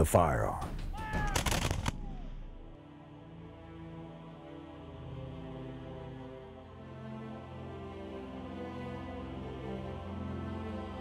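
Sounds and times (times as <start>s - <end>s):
quiet sombre music: 0.0s - 11.0s
rapid gunfire: 0.9s - 2.2s.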